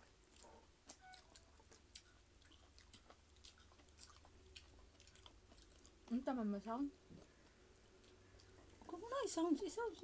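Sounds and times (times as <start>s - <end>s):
faint chewing: 0.0s - 10.0s.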